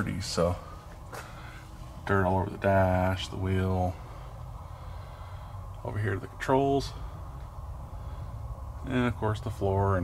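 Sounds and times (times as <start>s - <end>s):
man talking: 0.0s - 0.8s, 2.0s - 4.0s, 5.8s - 7.1s, 8.8s - 10.0s.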